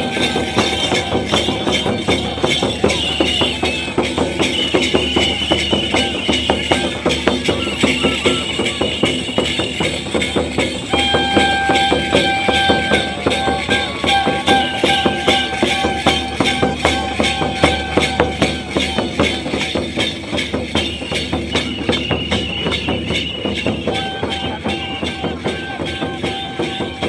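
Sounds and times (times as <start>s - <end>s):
jingling: 0.0s - 26.9s
fast drum strokes: 0.0s - 27.0s
held melody instrument notes: 0.0s - 27.0s.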